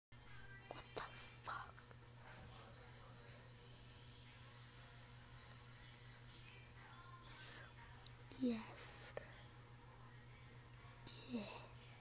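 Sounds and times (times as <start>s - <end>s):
steady low hum: 0.2s - 12.0s
person whispering: 0.7s - 1.8s, 7.3s - 9.4s, 11.1s - 11.8s.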